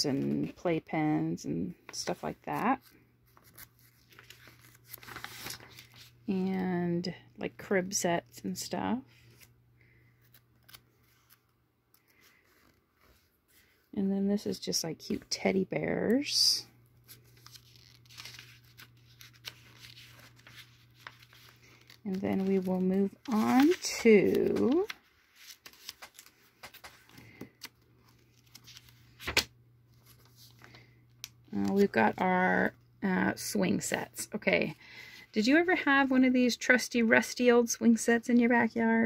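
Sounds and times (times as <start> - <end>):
paper pages turning: 1.9 - 6.2, 10.2 - 13.7, 17.0 - 32.0.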